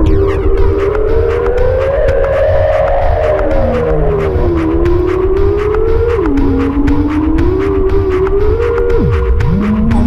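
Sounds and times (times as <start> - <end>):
electro music: 0.0 - 10.0
quick evenly spaced ticks: 0.0 - 10.0
wavering siren-like tone: 0.0 - 10.0.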